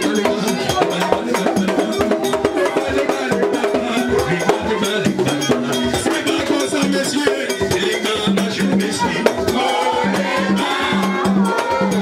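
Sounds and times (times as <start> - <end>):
drums: 0.0 - 12.0.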